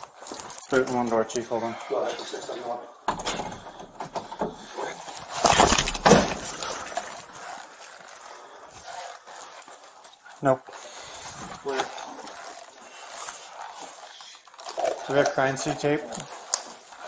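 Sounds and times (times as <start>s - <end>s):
clothing rustling against microphone: 0.0s - 17.0s.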